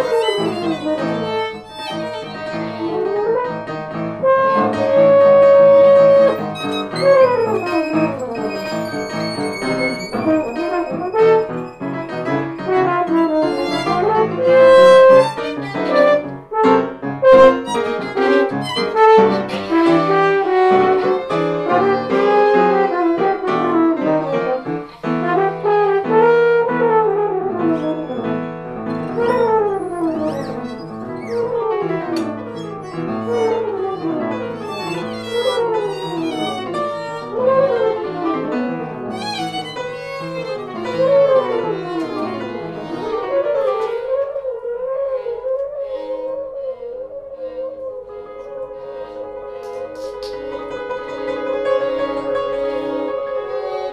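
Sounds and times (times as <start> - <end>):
piano: 0.0 - 53.9
violin: 0.0 - 53.9
french horn: 2.8 - 8.1.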